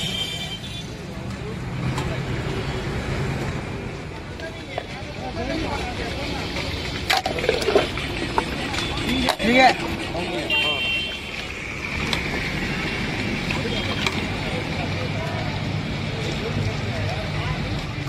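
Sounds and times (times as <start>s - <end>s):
city road traffic rumble: 0.0s - 18.0s.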